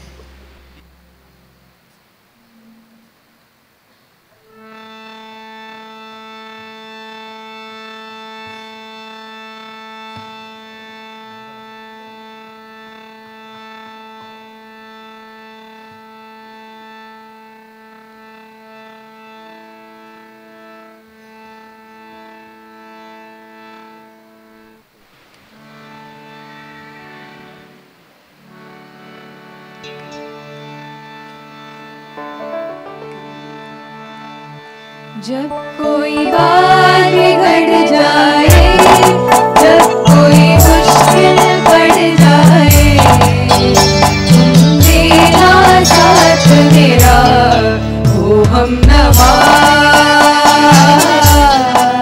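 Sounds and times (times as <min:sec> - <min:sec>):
harmonium holding long notes: 0:00.0 - 0:03.3, 0:04.4 - 0:52.0.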